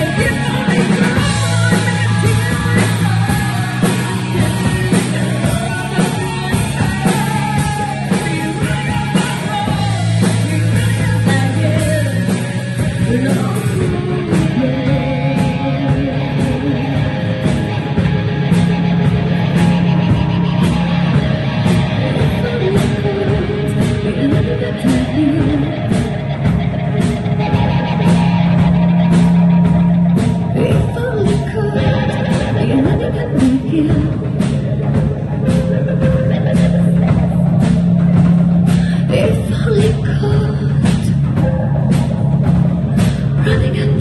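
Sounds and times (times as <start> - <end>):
bass: 0.0 - 44.0
drums: 0.0 - 44.0
electric guitars: 0.0 - 44.0
live rock band playing: 0.0 - 44.0.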